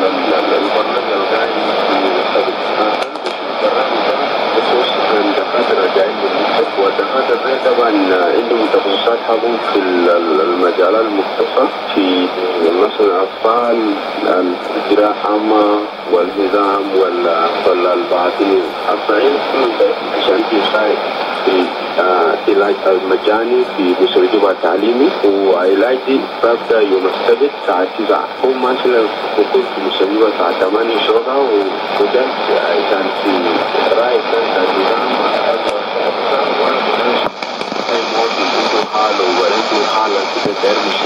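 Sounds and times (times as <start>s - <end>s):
faint steady hiss: 0.0s - 41.0s
radio speech through loudspeaker: 0.0s - 41.0s.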